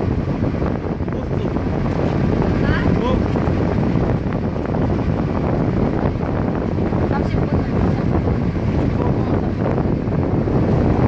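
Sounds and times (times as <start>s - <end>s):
boat engine running: 0.0s - 11.0s
water rushing: 0.0s - 11.0s
wind buffeting microphone: 0.0s - 11.0s.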